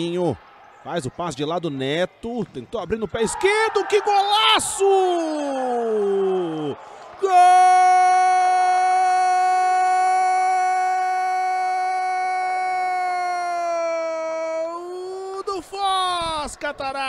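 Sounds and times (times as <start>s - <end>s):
commentator's drawn-out goal shout: 3.2s - 16.4s.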